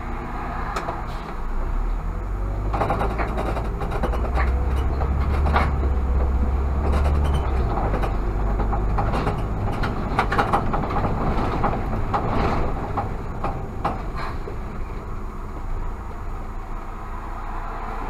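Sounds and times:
bus engine drone: 0:00.0 - 0:18.0
short rattles and knocks: 0:02.6 - 0:14.8.

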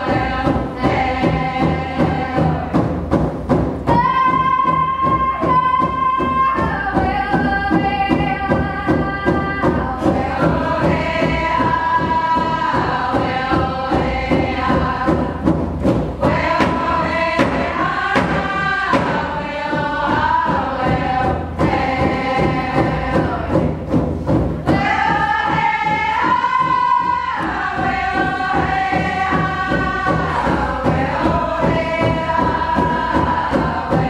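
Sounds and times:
women singing a chant-like song: 0:00.0 - 0:02.9, 0:03.9 - 0:15.6, 0:16.2 - 0:24.0, 0:24.6 - 0:34.0
steady drumbeat: 0:00.0 - 0:34.0
steady low beat: 0:00.0 - 0:34.0.

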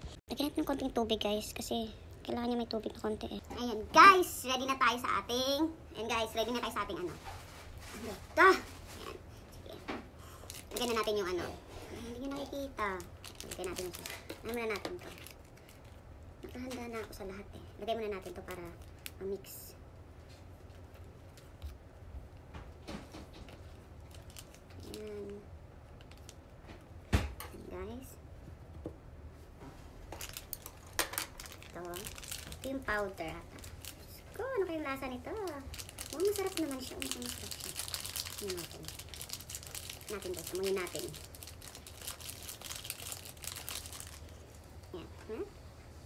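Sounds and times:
foil sachet clicks and crinkles: 0:10.4 - 0:11.4, 0:12.2 - 0:17.2, 0:23.5 - 0:26.4, 0:30.1 - 0:44.6
woman speaking: 0:31.7 - 0:39.0, 0:40.0 - 0:41.2, 0:44.9 - 0:45.6.

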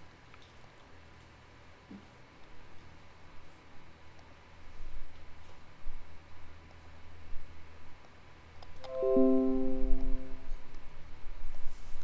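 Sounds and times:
descending notification chime: 0:08.8 - 0:10.5.

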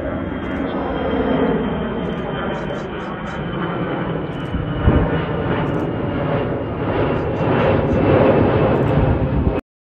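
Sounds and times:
jet engines roaring: 0:00.0 - 0:09.6.

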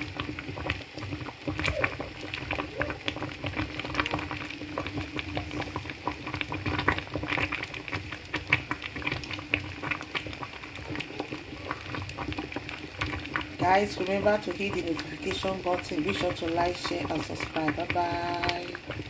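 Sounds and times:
soup bubbling in a pot: 0:00.0 - 0:19.0.

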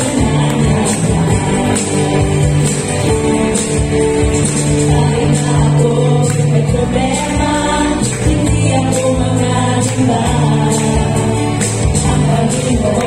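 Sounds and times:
instrumental accompaniment: 0:00.0 - 0:13.0
women singing worship song: 0:00.0 - 0:13.0.

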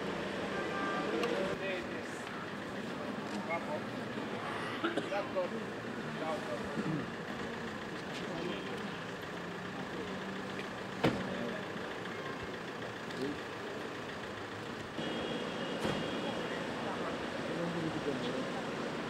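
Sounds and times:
traffic noise: 0:00.0 - 0:19.0.

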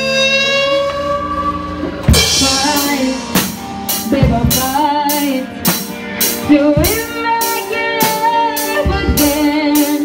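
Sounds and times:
electric guitar sustained notes: 0:00.0 - 0:10.0.

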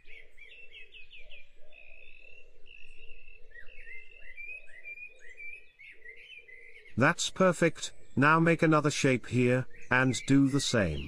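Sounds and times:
birds chirping and warbling: 0:00.0 - 0:11.0
low repeated sound: 0:07.0 - 0:11.0.

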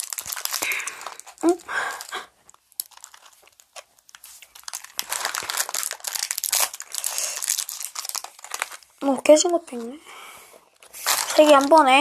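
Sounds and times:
plastic candy wrappers crinkling: 0:00.0 - 0:10.0, 0:10.6 - 0:12.0.

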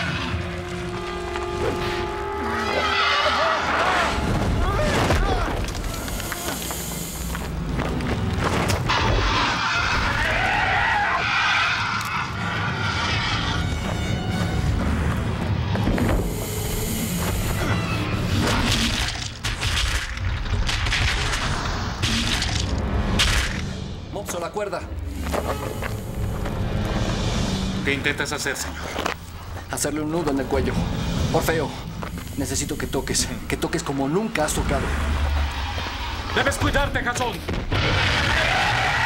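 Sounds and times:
dramatic film music: 0:00.0 - 0:38.4
booms and crashing impacts: 0:36.6 - 0:38.6.

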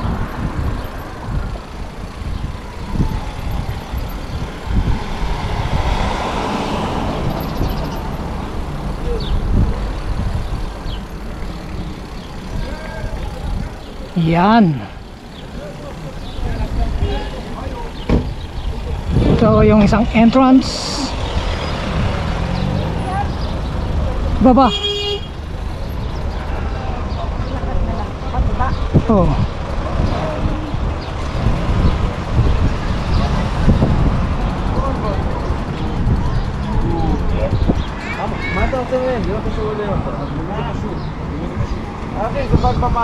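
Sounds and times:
wind on microphone: 0:00.0 - 0:13.9, 0:18.2 - 0:23.9, 0:27.3 - 0:38.0
road traffic: 0:00.0 - 0:43.0
car driving past: 0:04.3 - 0:10.0, 0:21.0 - 0:24.3
faint voices: 0:08.4 - 0:24.6, 0:34.4 - 0:43.0.

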